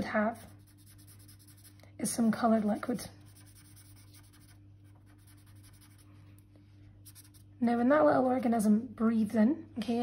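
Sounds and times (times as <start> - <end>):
felt-tip pen scratching paper: 0.0 - 1.8, 3.3 - 6.1
low steady hum: 0.0 - 10.0.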